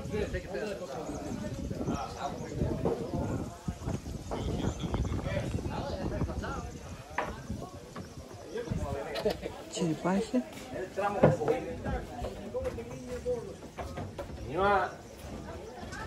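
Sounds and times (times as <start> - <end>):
people talking: 0.0 - 16.0
footsteps on wooden boardwalk: 0.7 - 6.2, 6.9 - 16.0.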